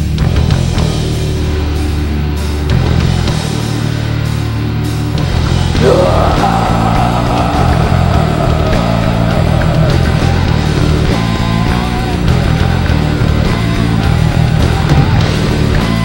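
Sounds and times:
bass: 0.0s - 16.0s
drums: 0.0s - 16.0s
distorted electric guitars: 5.7s - 16.0s.

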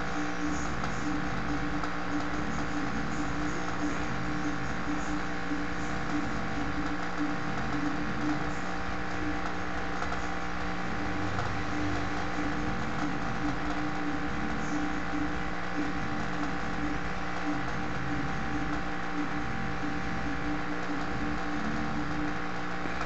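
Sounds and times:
steady mechanical hum: 0.0s - 23.0s.

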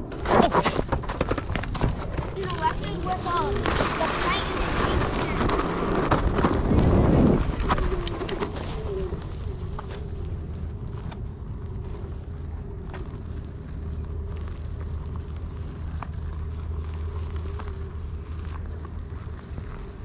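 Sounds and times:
grit ticking under tyre: 0.0s - 20.0s
low rumble: 1.9s - 20.0s.

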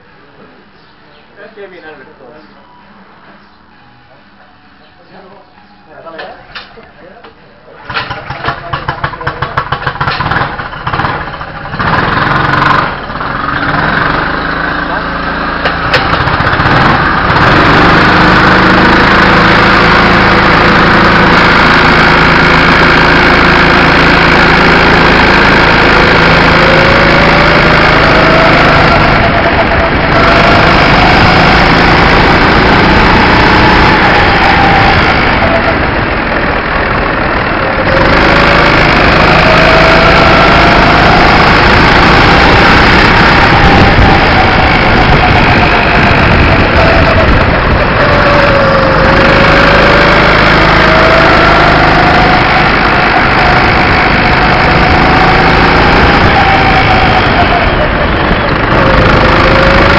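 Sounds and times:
go-kart engine revving: 7.8s - 59.9s.

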